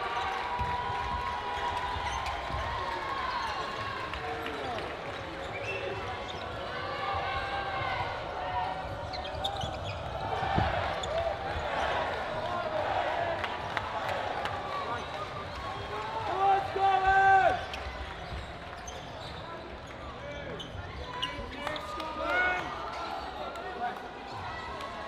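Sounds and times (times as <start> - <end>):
shoes squeaking on wooden floor: 9.0 - 11.2.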